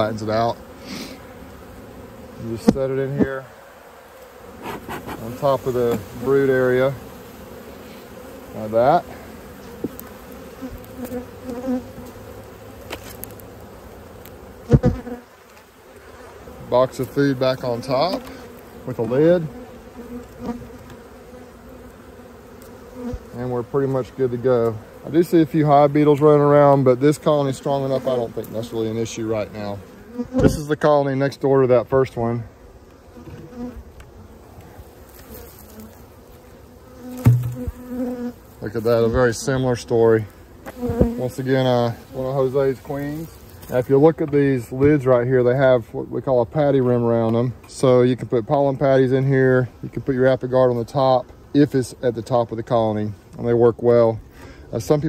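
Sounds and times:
bees flying past: 0.0 - 45.8
honeybees buzzing: 0.0 - 55.0
knocks on wooden hive box: 14.7 - 15.0, 30.3 - 30.6, 37.2 - 37.8, 40.7 - 41.2
loud knock: 37.2 - 37.7.

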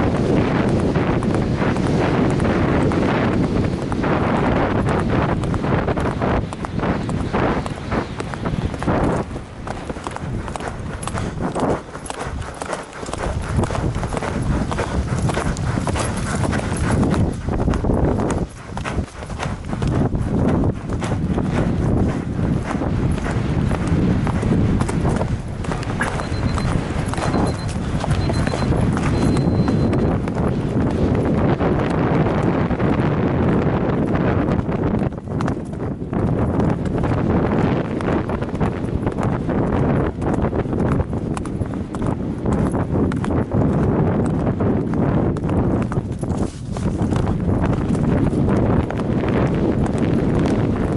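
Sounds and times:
horse hoofbeats galloping on grass: 0.0 - 50.9.

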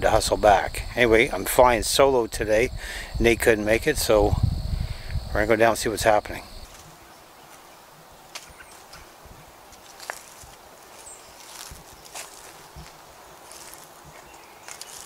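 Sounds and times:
footsteps on fallen leaves: 6.6 - 7.7, 9.7 - 15.0.

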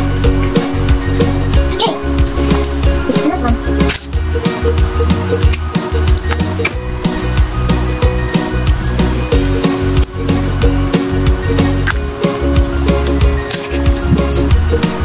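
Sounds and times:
music with pulsing bass: 0.0 - 15.0.

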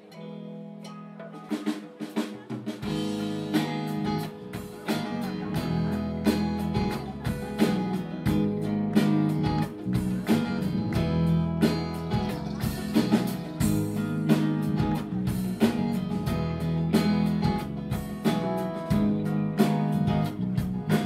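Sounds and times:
bass guitar: 0.0 - 21.0
drum kit: 0.0 - 21.0
electric and acoustic guitars: 0.0 - 21.0
hand percussion: 0.9 - 21.0.

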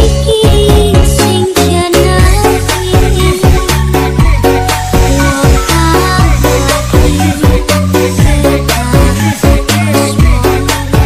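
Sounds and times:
electronic dance-pop music: 0.0 - 11.0.

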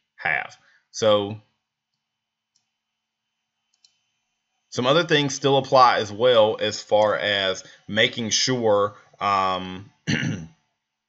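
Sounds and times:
computer mouse clicks: 2.5 - 2.7, 3.7 - 4.0.

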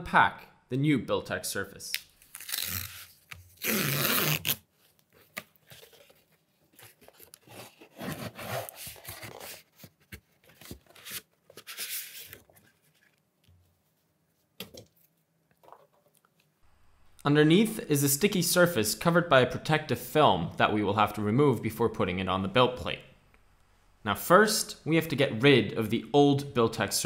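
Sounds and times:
cardboard tear strip ripping: 1.9 - 4.7
cardboard rustling and scraping: 5.1 - 13.2.

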